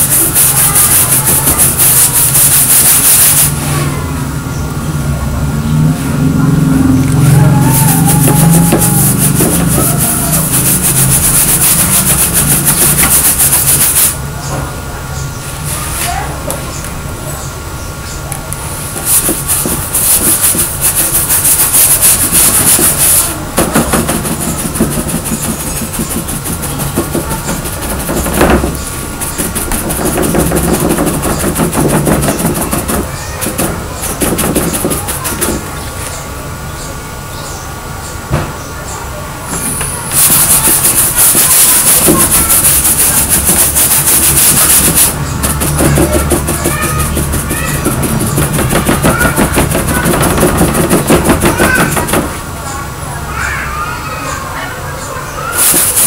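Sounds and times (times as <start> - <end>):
paintbrush scratching on board: 0.0 - 3.6, 7.1 - 14.2, 18.8 - 35.7, 39.6 - 52.4, 55.5 - 56.0.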